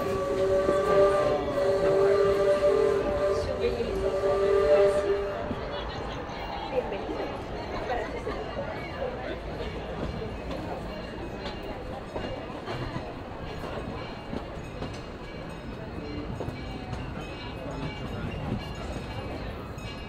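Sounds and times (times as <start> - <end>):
train car rumbling on rails: 0.0 - 20.0.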